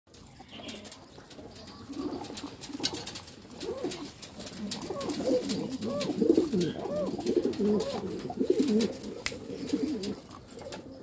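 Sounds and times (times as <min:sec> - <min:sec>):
pigeons cooing: 0:00.4 - 0:11.0.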